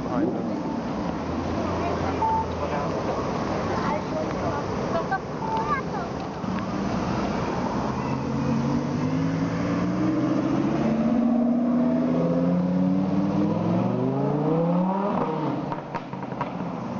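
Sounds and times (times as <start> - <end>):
car engine revving: 6.6 - 16.5.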